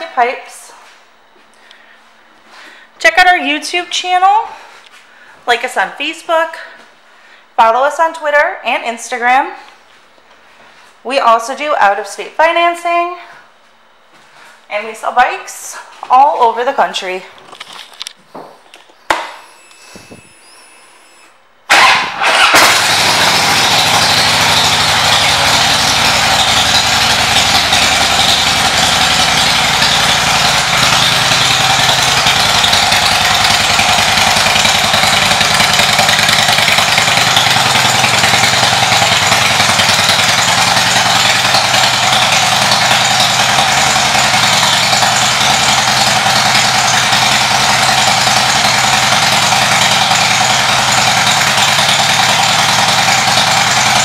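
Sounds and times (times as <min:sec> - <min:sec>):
motorcycle engine starting and idling: 0:19.1 - 0:54.0.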